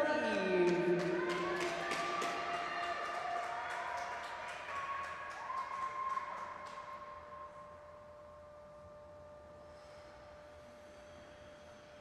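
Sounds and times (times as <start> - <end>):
crowd applauding and cheering: 0.0 - 7.8
faint steady tone: 6.9 - 12.0.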